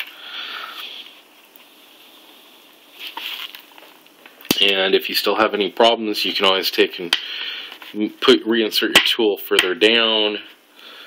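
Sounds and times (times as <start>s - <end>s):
plastic rubbing and rustling: 2.0s - 4.4s.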